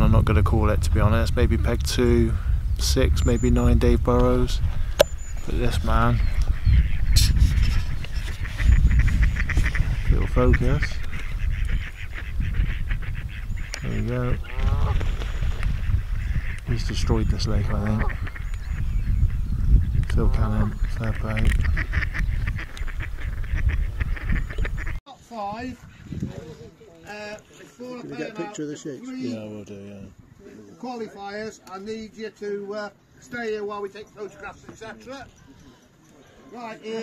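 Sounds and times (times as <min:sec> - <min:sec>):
wind buffeting microphone: 0:00.0 - 0:26.8
ducks quacking: 0:03.0 - 0:25.0
waterfowl honking: 0:04.8 - 0:19.5, 0:20.9 - 0:25.0.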